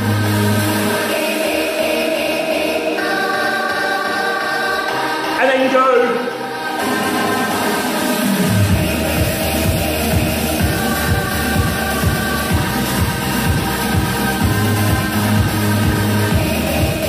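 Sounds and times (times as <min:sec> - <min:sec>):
choir-like singing over chords: 0:00.0 - 0:17.0
bass-heavy beat: 0:08.4 - 0:17.0.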